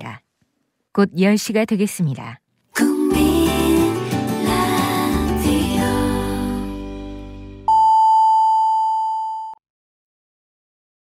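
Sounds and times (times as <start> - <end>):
music: 2.8 - 7.7
long steady electronic beep: 7.7 - 9.6.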